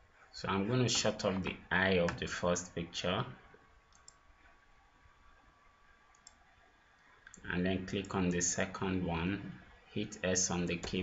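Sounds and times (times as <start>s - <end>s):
computer mouse click: 3.9s - 4.2s, 6.1s - 6.4s.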